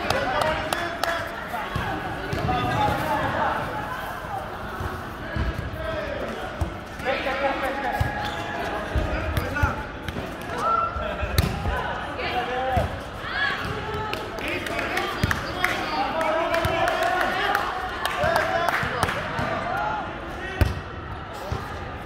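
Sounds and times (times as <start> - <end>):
murmur of voices: 0.0 - 22.0.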